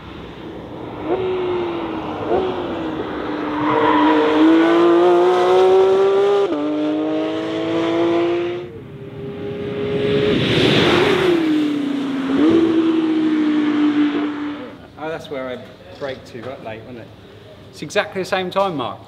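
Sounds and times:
car passing with rush of air: 0:00.0 - 0:14.8
sports car engine at high revs: 0:00.6 - 0:14.8.

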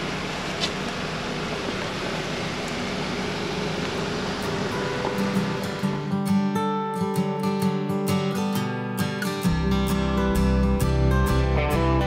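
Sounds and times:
acoustic guitar music: 0:04.2 - 0:12.0.

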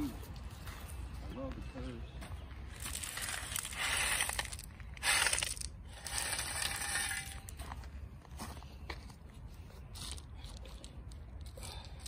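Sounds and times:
footsteps crunching on rock: 0:00.1 - 0:09.2.

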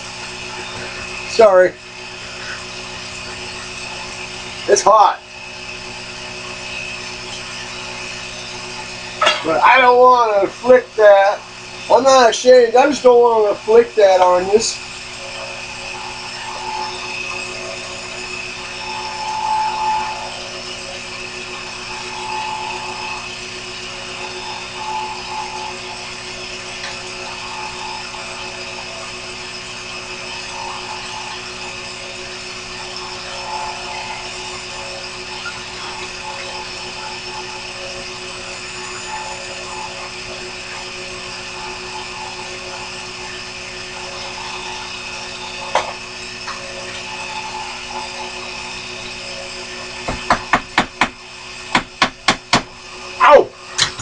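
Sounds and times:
metal lathe motor whine: 0:00.0 - 0:54.0.

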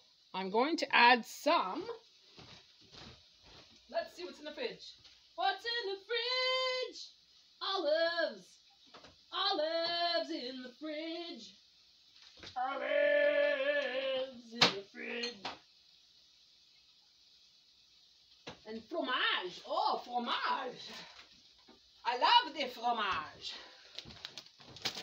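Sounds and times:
woman singing: 0:05.4 - 0:07.0, 0:07.6 - 0:08.6, 0:09.3 - 0:11.5, 0:12.6 - 0:15.4.

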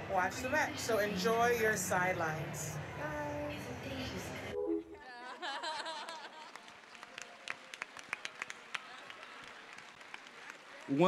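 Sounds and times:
faint applause: 0:06.0 - 0:11.0
scattered clapping: 0:06.2 - 0:11.0.

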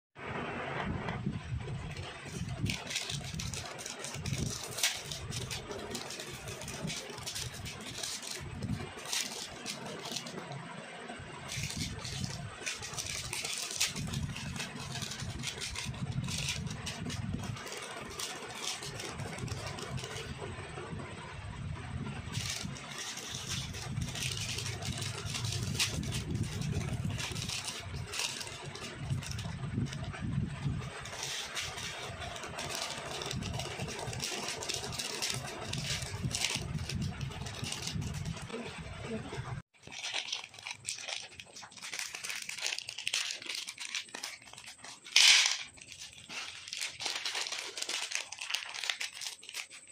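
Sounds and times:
snack wrappers crinkling and tearing: 0:02.0 - 0:10.5, 0:11.5 - 0:20.3, 0:22.3 - 0:30.0, 0:31.0 - 0:38.5, 0:39.7 - 0:49.9.

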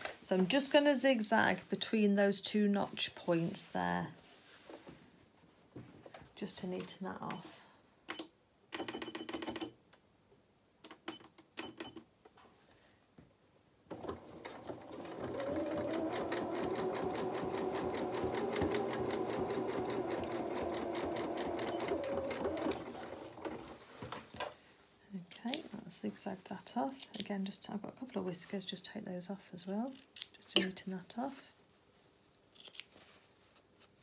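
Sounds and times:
electric sewing machine running: 0:13.9 - 0:23.7
sewing machine clicks: 0:13.9 - 0:23.7.

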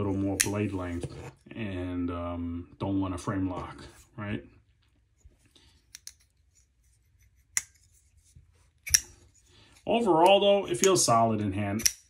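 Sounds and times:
folding knife blade clicking: 0:11.8 - 0:12.0.

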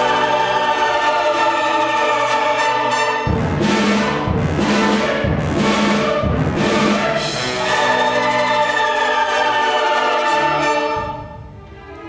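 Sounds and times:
orchestra holding a chord: 0:00.0 - 0:11.3.

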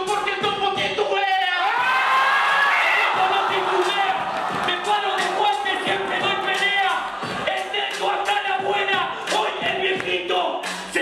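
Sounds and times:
hip-hop beat thumps: 0:00.0 - 0:02.0, 0:02.9 - 0:11.0
man rapping into a microphone: 0:00.0 - 0:02.0, 0:02.9 - 0:11.0
crowd noise: 0:01.6 - 0:11.0.

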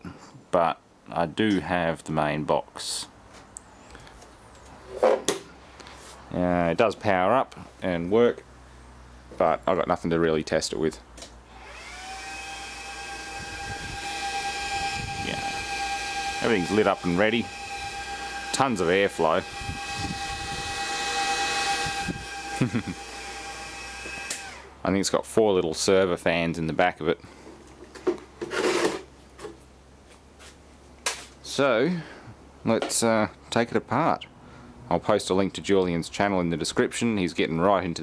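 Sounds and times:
cooling fans whining: 0:09.3 - 0:25.0
metal scraping on steel bench: 0:28.4 - 0:29.1.

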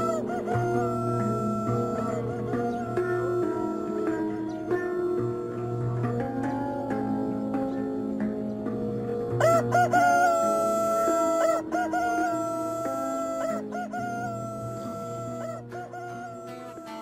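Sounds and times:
rooster crowing: 0:00.0 - 0:04.8, 0:09.4 - 0:17.0
soft plucked-string music: 0:00.0 - 0:17.0.

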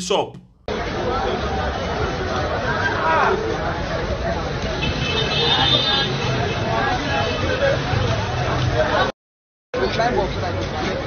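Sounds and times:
many voices: 0:00.0 - 0:09.1
traffic: 0:00.0 - 0:09.1, 0:09.8 - 0:11.0.

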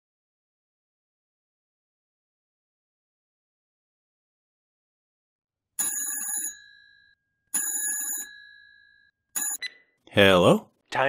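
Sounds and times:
telephone ringing: 0:05.8 - 0:10.0.

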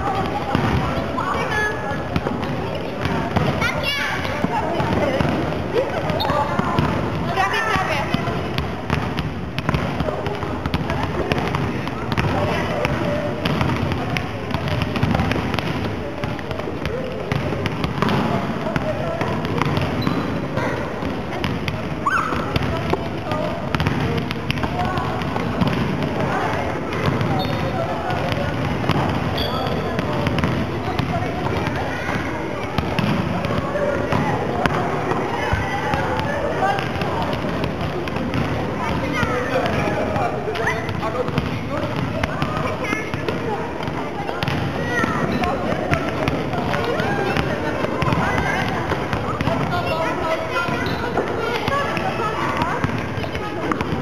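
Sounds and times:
hubbub of children's voices: 0:00.0 - 0:54.0
volleyballs bounced and struck: 0:00.0 - 0:54.0.

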